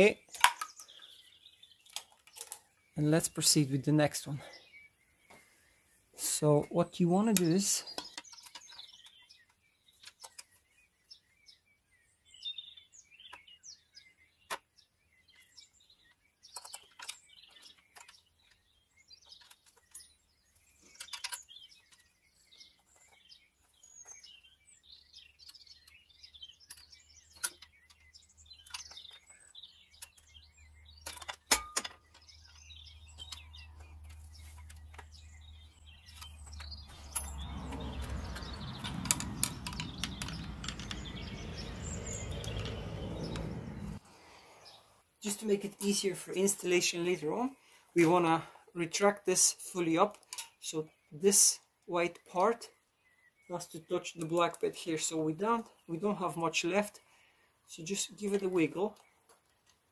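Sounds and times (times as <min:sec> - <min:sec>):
bird chirps: 0:00.0 - 0:48.2, 0:49.6 - 0:59.7.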